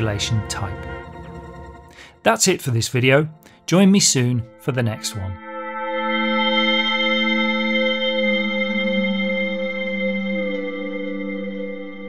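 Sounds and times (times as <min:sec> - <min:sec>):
synthesizer playing echoing chord: 0:00.0 - 0:12.0.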